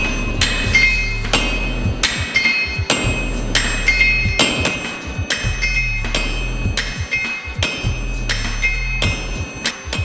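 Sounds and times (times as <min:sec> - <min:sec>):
hammers striking iron on anvil: 0:00.0 - 0:10.0.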